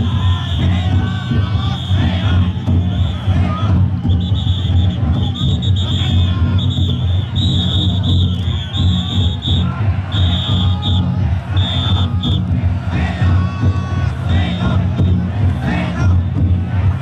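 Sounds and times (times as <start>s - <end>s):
big drums pounding: 0.0s - 17.0s
crowd shouting: 0.0s - 17.0s
shrill whistle blasts: 0.2s - 12.5s.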